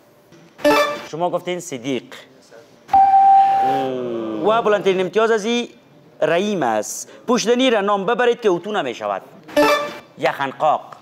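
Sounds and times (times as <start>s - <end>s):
steady electronic tone: 2.9s - 4.1s.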